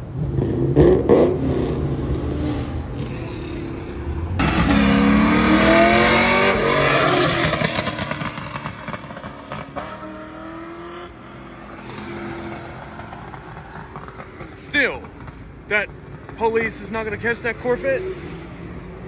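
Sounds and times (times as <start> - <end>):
car engine accelerating past: 0.2 - 14.2.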